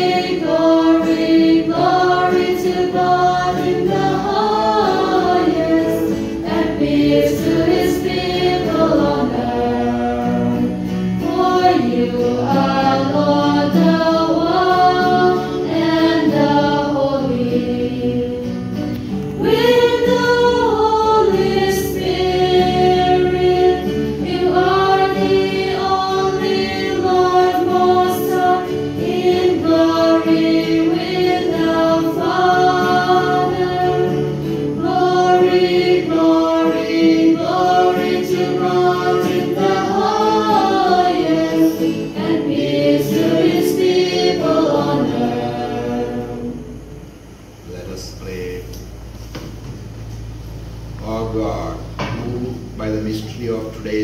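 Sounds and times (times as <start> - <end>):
church choir singing a hymn: 0.0 - 47.3.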